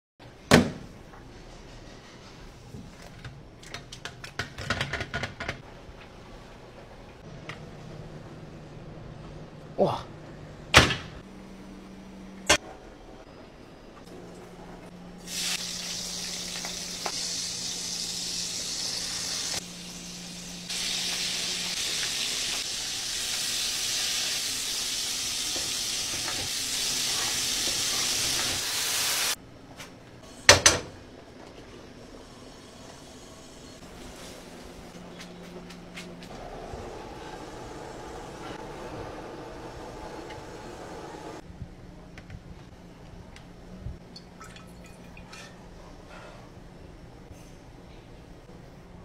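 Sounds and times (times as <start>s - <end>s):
food sizzling in hot oil: 15.2s - 29.4s.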